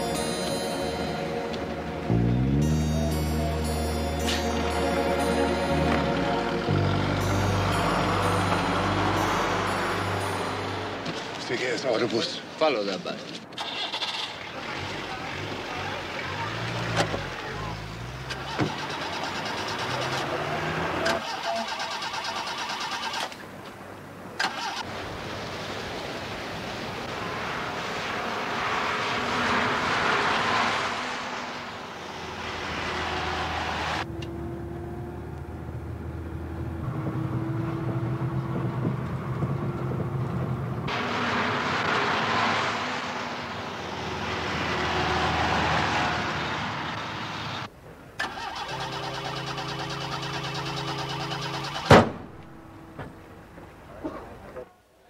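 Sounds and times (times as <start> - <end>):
car engines revving: 0.0 - 12.0, 13.4 - 24.9, 27.0 - 54.5
road noise of passing vehicles: 0.0 - 55.0.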